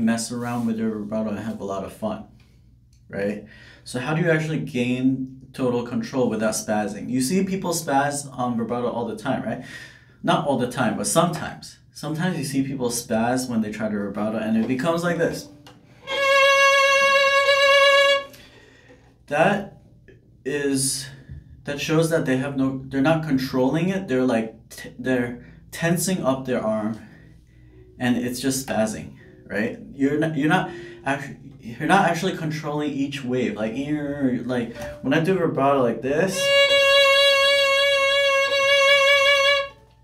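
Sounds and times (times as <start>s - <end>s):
violin bowed note with vibrato: 16.0s - 18.4s, 36.2s - 40.0s.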